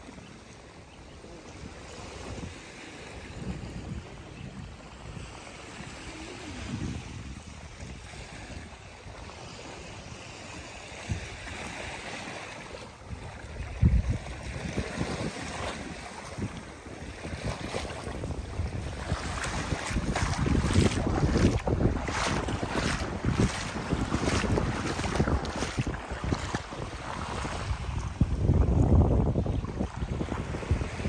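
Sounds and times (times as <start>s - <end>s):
small waves washing on sand: 0.0s - 31.0s
wind buffeting microphone: 1.6s - 31.0s.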